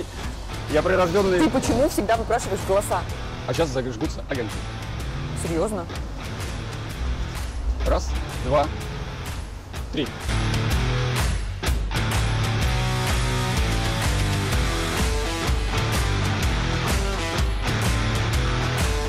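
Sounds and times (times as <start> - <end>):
background music with steady beat: 0.0 - 19.0.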